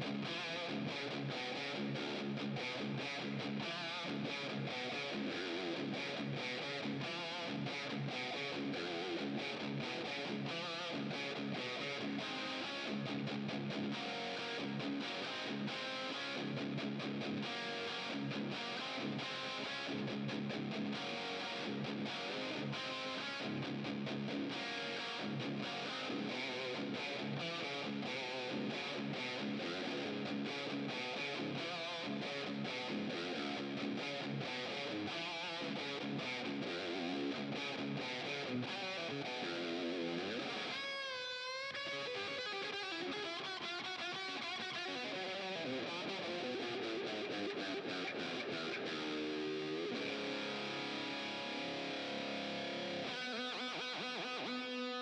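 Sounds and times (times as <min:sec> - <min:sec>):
distorted electric guitar riffing: 0:00.0 - 0:55.0.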